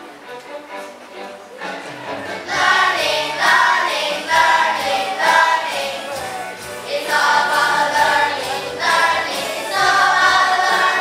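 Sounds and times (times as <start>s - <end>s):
children's choir singing: 1.6s - 11.0s.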